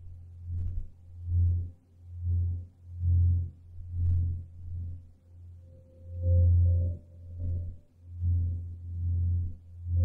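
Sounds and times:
ambient meditation music low tone: 0.0s - 10.0s.

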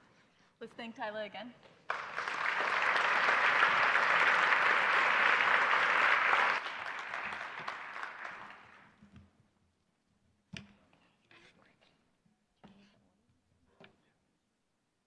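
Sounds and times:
audience applauding: 1.9s - 9.0s.

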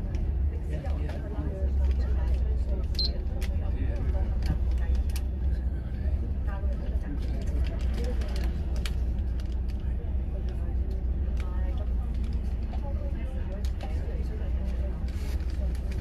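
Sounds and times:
coach engine low drone: 0.0s - 16.0s.

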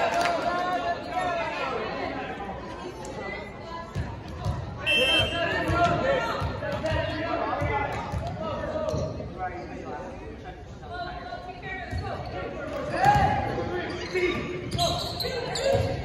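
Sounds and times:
referee's whistle blast: 4.8s - 5.6s.

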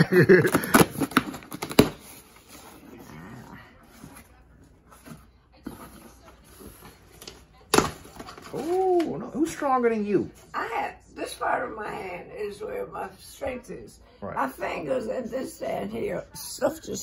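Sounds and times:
loud cardboard crack: 0.3s - 2.2s
cardboard rustling and scraping: 3.8s - 8.8s.

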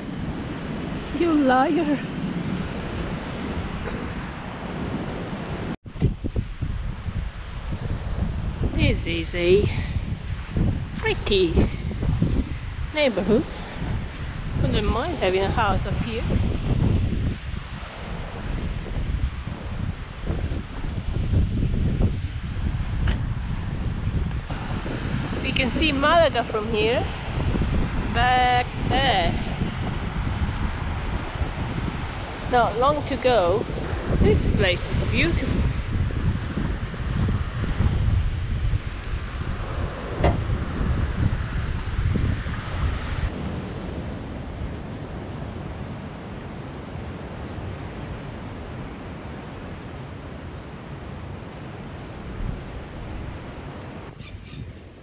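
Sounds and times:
surf washing on beach: 0.0s - 54.3s
wind gusting across microphone: 0.0s - 55.0s
brief knock: 40.2s - 40.4s.

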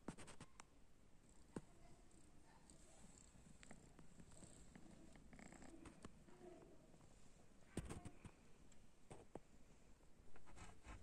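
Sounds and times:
cat purring faintly: 1.2s - 8.6s.

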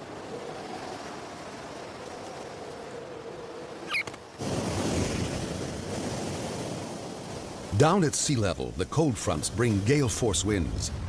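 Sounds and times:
rushing wind: 0.0s - 7.9s, 8.5s - 11.0s.

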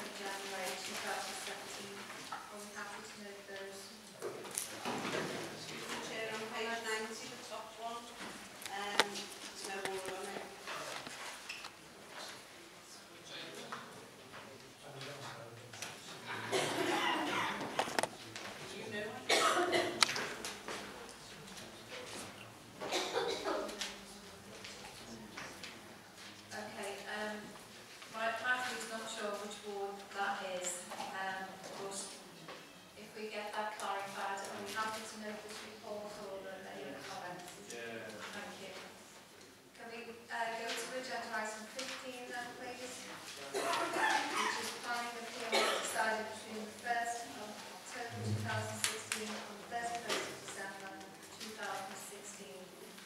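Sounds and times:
person coughing: 16.3s - 17.7s, 19.3s - 20.0s, 22.8s - 23.7s, 43.5s - 44.2s, 45.5s - 46.0s
person speaking: 48.0s - 52.6s.

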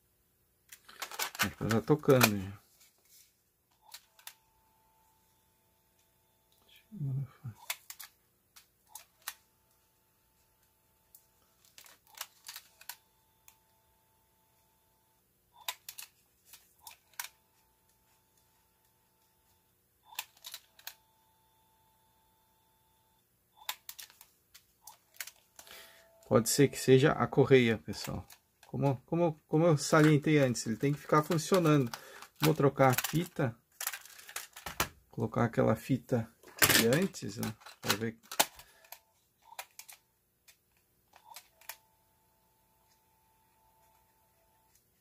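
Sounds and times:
faint steady tone: 25.4s - 27.6s, 41.2s - 45.0s.

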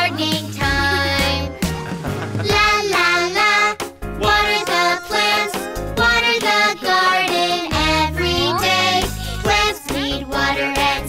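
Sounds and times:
child singing: 0.0s - 1.5s, 2.4s - 11.0s
backing music: 0.0s - 11.0s.

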